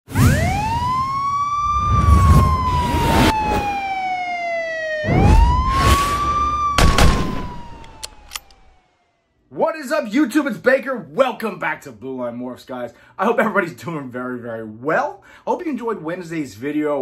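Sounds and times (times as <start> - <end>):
wailing siren: 0.1 - 9.4.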